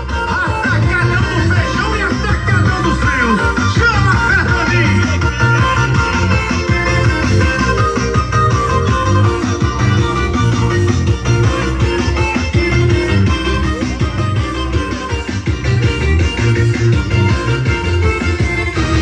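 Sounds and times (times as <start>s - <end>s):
loud bass-heavy music from speakers: 0.0s - 19.0s.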